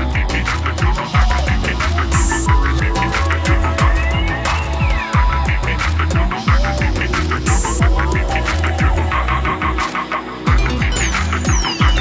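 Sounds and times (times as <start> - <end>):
hi-hats: 0.0 - 12.0
rolling bassline: 0.0 - 12.0.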